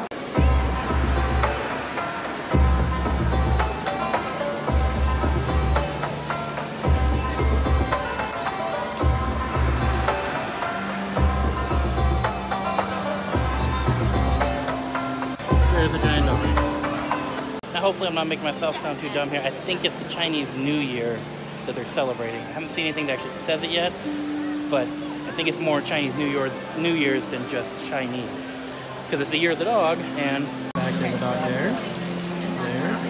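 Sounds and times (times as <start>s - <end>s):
background music held tones: 0.0s - 33.0s.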